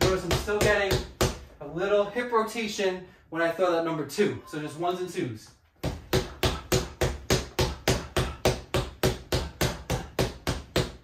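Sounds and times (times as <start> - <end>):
fists striking punching pad: 5.8 - 11.0.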